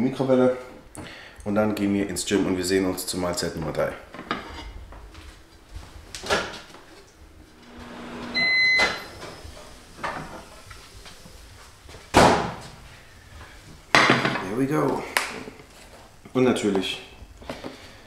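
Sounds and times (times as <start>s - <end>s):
microwave beep: 7.7s - 9.4s.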